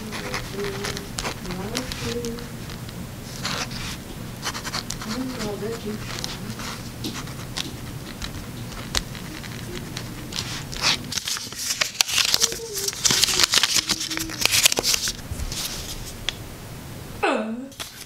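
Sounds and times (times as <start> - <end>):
pen scratching on paper: 0.0 - 2.4, 3.3 - 12.1
paper ripping and crinkling: 0.0 - 16.2, 17.7 - 18.0.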